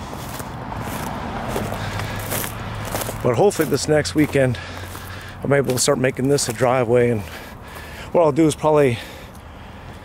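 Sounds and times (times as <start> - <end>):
footsteps on dry brush and dirt: 0.0 - 10.0
low engine hum: 0.0 - 10.0
road traffic noise: 0.0 - 10.0.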